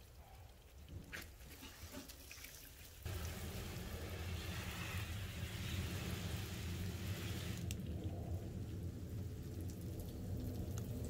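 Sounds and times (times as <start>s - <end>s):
water spraying from hose: 1.2s - 11.0s
low rumble: 3.7s - 11.0s.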